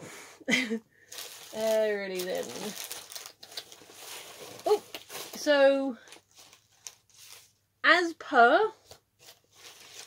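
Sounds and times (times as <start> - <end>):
packaging rustling and crinkling: 1.1 - 7.6, 8.8 - 10.0.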